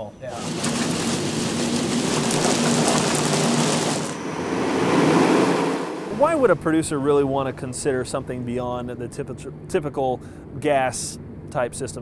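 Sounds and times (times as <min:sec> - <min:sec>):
furnace auger and blower rushing: 0:00.3 - 0:07.3.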